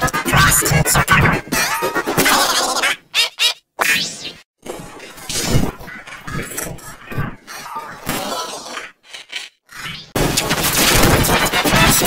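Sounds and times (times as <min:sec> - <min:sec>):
noisy breaking crash: 0:10.2 - 0:12.0.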